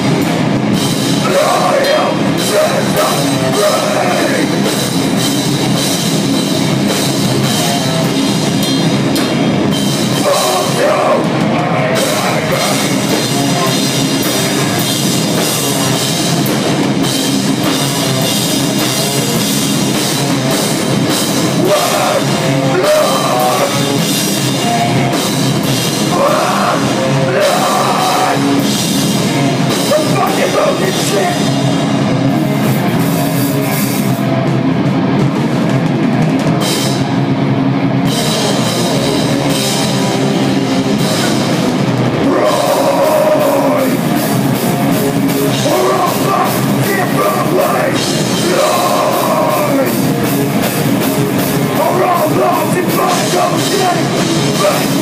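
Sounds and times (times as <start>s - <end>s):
drum kit with crashing cymbals: 0.0s - 37.3s, 38.0s - 55.0s
electric guitar: 0.0s - 55.0s
metal band playing live: 0.0s - 55.0s.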